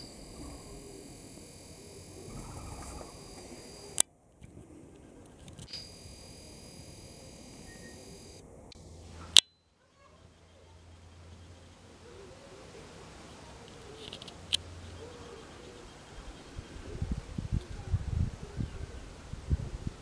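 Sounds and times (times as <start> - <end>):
camcorder zoom motor whining: 0.0 - 4.0, 5.4 - 8.4
sharp clicks: 0.0 - 4.6, 5.2 - 9.5, 13.7 - 14.6
faint outdoor background: 0.0 - 20.0.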